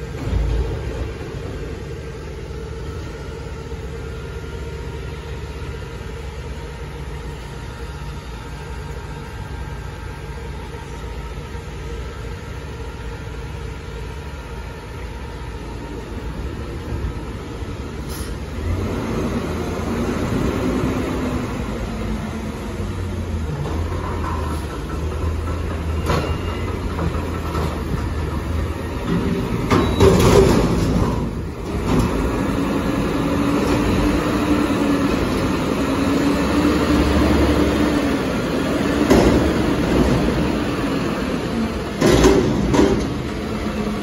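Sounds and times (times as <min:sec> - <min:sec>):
garbage truck diesel engine rumble: 0:00.0 - 0:44.0
brief high hiss: 0:18.0 - 0:18.4.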